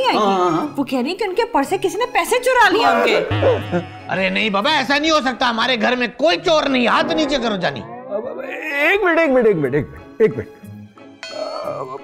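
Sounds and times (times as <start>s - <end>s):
vocal grunt: 7.8s - 9.0s, 11.2s - 12.0s.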